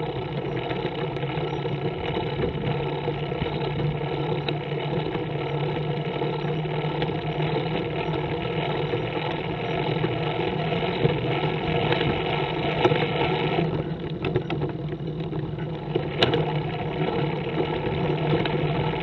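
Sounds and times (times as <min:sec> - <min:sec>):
trike engine running: 0:00.0 - 0:19.0.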